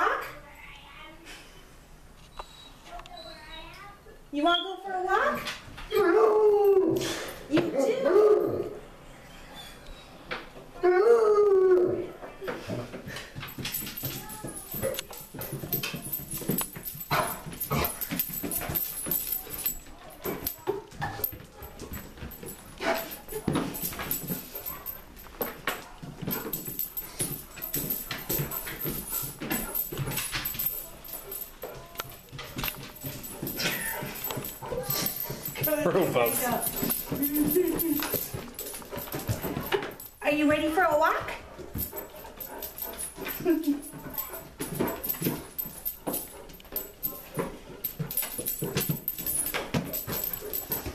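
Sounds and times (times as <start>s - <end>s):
paws on wooden stairs: 12.5s - 50.9s
dog baying: 26.2s - 40.1s.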